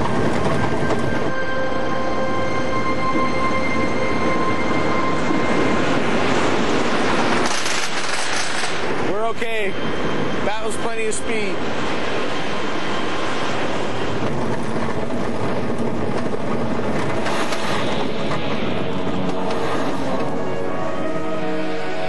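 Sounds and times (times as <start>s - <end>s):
roller coaster rumbling on track: 0.0s - 22.0s.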